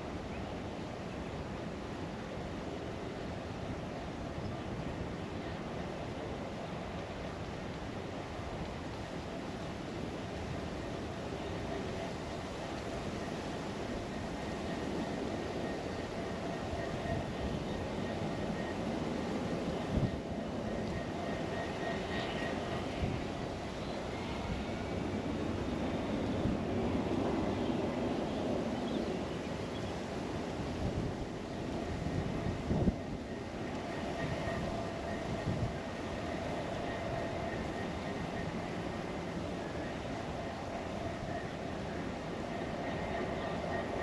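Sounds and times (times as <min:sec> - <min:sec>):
train rolling past: 0:01.0 - 0:44.0.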